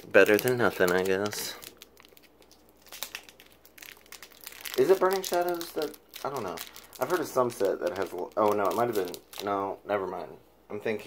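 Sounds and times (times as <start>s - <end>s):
plastic packaging crinkling: 0.0s - 9.6s.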